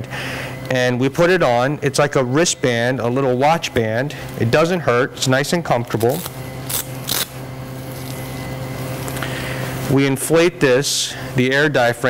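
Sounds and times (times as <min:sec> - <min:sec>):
electrical hum from equipment: 0:00.0 - 0:12.0.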